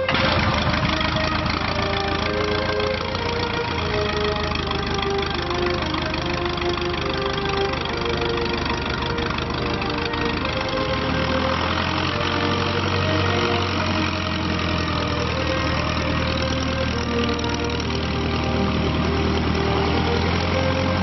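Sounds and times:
biplane engine running: 0:00.0 - 0:21.0.

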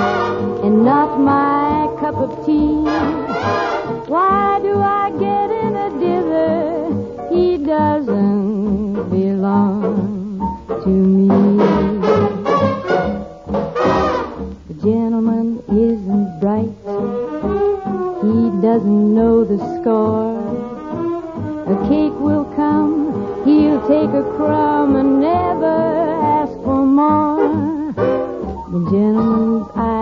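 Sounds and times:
brass section held chords: 0:00.0 - 0:00.6, 0:02.8 - 0:04.1, 0:11.6 - 0:14.5
dance orchestra playing a ballad: 0:00.0 - 0:30.0.

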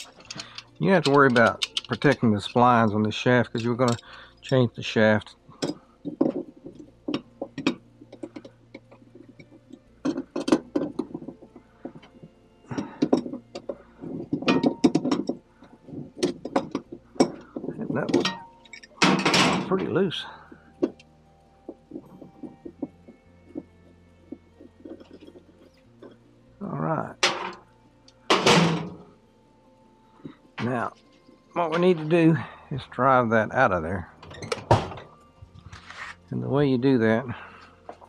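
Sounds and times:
wrench clicking and knocking on nut: 0:00.0 - 0:03.0, 0:05.6 - 0:12.1, 0:12.7 - 0:19.7
scraping rattle of metal: 0:00.0 - 0:21.0, 0:21.9 - 0:26.2, 0:28.3 - 0:29.1.

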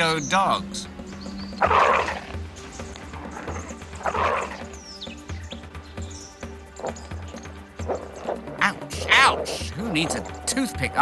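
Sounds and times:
dingo snarling: 0:01.6 - 0:02.4, 0:03.1 - 0:04.7, 0:07.8 - 0:09.8.

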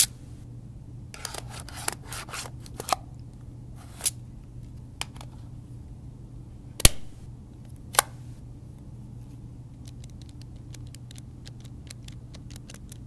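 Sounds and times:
steady low hum: 0:00.0 - 0:13.0
sharp clicks: 0:09.8 - 0:13.0
calculator keys clicking: 0:09.9 - 0:13.0.

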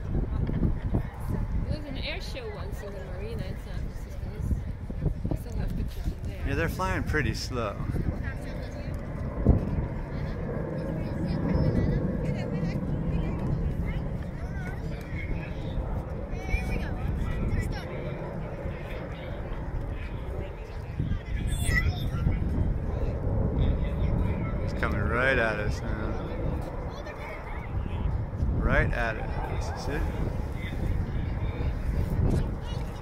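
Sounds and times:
distant jets rumbling: 0:00.0 - 0:33.0
faint voices: 0:00.0 - 0:33.0.

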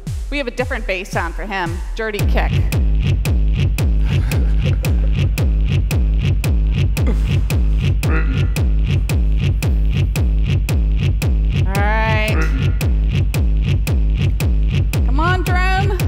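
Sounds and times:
electronic music with heavy kick: 0:00.0 - 0:16.0.

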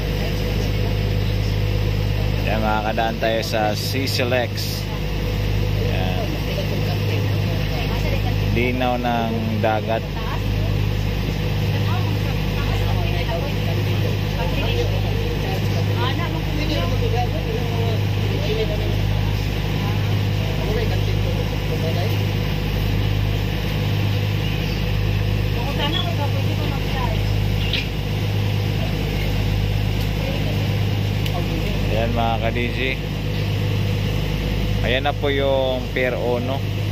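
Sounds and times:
faint voices: 0:00.0 - 0:36.7
ferry engines droning: 0:00.0 - 0:36.9.

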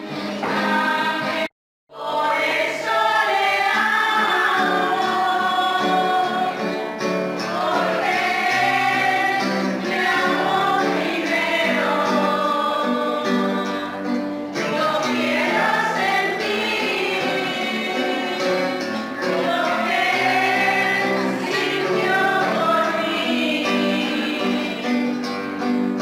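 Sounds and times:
choir singing a hymn: 0:00.0 - 0:25.7
musical accompaniment: 0:00.0 - 0:26.0.

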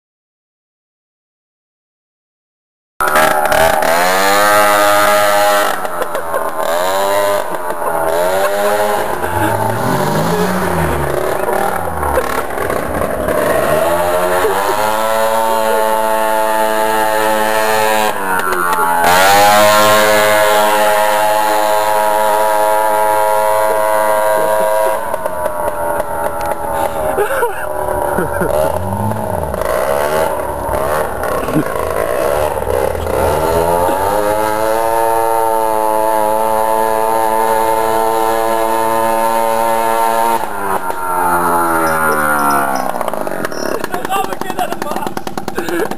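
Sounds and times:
moped engine revving: 0:03.0 - 0:45.9.

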